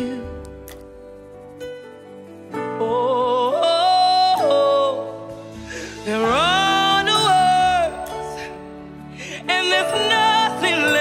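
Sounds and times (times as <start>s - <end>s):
woman singing gospel: 6.0s - 8.5s, 9.3s - 11.0s.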